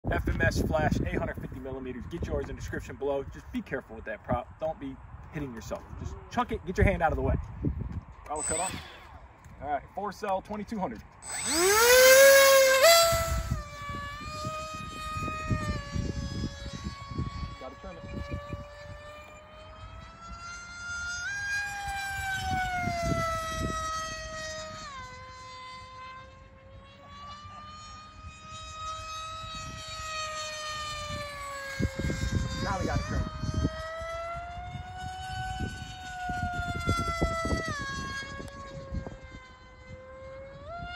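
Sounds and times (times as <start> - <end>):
wind gusts on microphone: 0.0 - 25.8, 28.2 - 40.9
electric motor propeller whine: 0.1 - 40.9.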